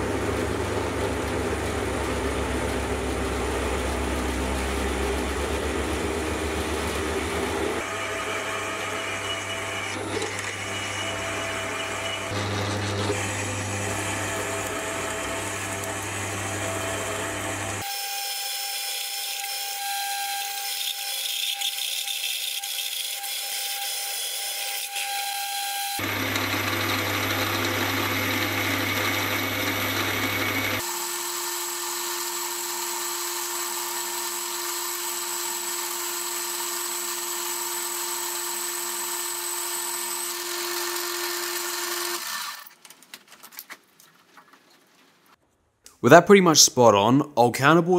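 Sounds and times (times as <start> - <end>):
metal lathe running: 0.4 - 19.6, 20.5 - 42.7
high whine of boring bar cut: 1.7 - 42.7
drill bit boring through steel: 7.8 - 42.7.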